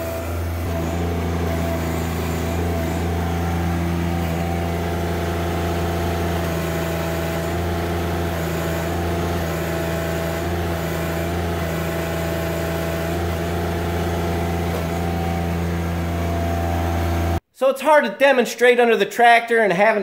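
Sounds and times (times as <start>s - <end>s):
hydraulic pump straining: 0.0s - 17.4s
tractor diesel engine under load: 0.0s - 17.4s.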